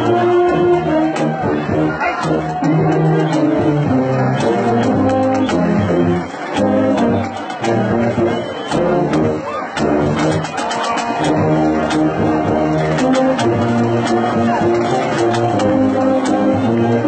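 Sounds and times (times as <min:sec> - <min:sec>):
band playing a song: 0:00.0 - 0:17.0.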